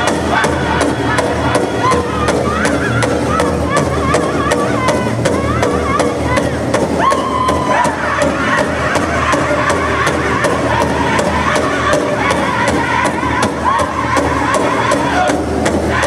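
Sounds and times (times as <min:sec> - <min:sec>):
big drum steady beat: 0:00.0 - 0:16.0
group singing in high voices: 0:00.0 - 0:16.0.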